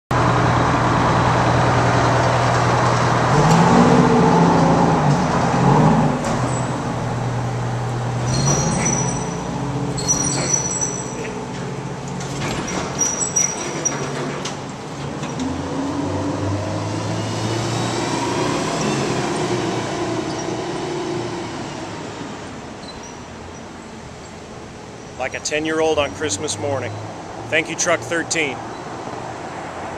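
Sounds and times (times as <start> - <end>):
diesel truck engine revving: 0.1 - 13.0, 13.9 - 22.8
short high squeaks: 8.2 - 11.5, 12.6 - 14.2, 22.8 - 23.8.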